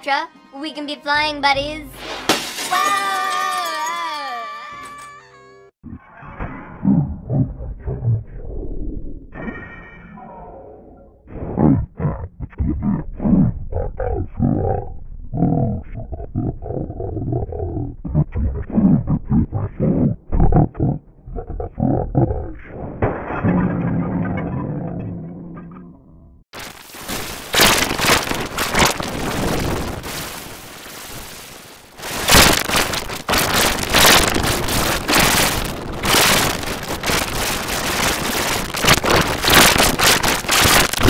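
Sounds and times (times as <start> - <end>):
cartoon glass shattering crash: 2.0 - 5.2, 30.0 - 36.8
high-pitched scream: 2.7 - 5.3.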